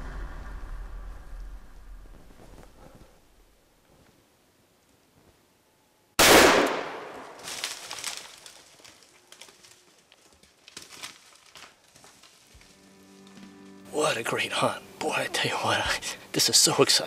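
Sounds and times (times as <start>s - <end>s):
faint cracks and rustles: 2.0s - 3.2s, 7.1s - 13.8s
handgun shot: 6.2s - 7.4s
background music: 12.8s - 16.2s.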